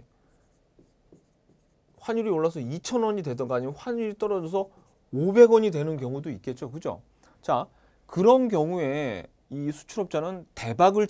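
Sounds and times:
pen writing on board: 0.3 - 2.0.

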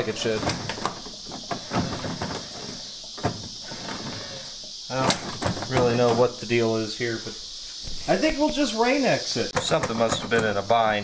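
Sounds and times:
linkage clunks and clicks: 0.0 - 6.3, 9.5 - 10.6.

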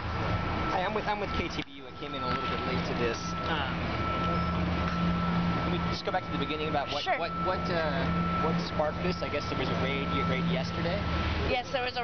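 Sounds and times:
large vehicle engine running: 0.0 - 12.0
street noise: 0.0 - 12.0
thin steady high tone: 0.4 - 12.0.

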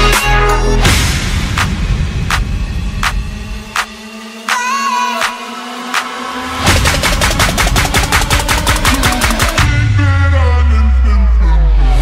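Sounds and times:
rapid percussive hits: 0.9 - 4.6, 5.2 - 9.8
low bass line: 6.6 - 12.0.

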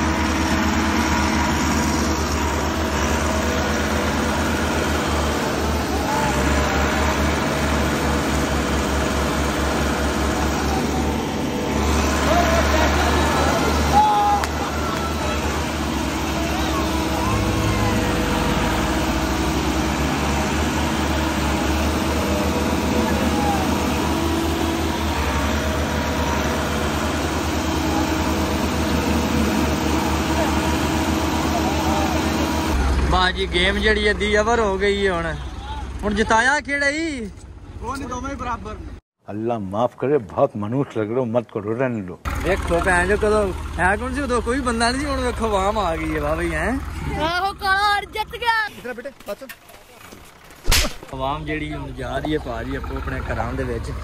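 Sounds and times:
tractor diesel engines labouring: 0.0 - 39.0, 42.2 - 54.0.

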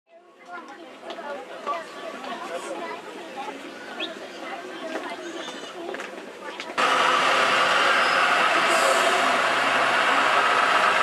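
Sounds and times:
indistinct chatter of people: 0.1 - 11.0.

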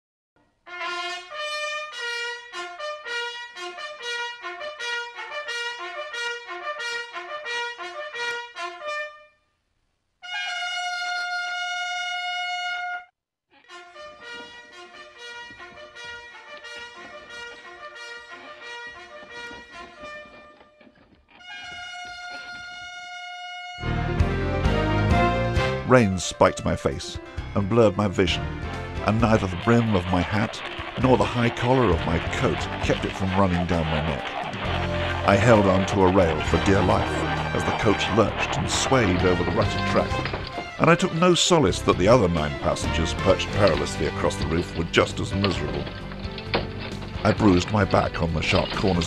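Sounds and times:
brass horn calls: 0.7 - 9.4, 10.2 - 49.0.

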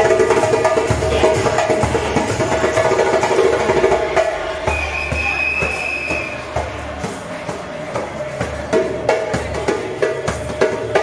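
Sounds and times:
hand drum beat: 0.0 - 11.0
music: 0.0 - 11.0.

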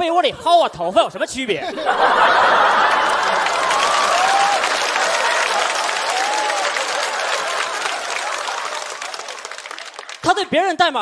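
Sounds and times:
audience applauding: 2.1 - 10.5.

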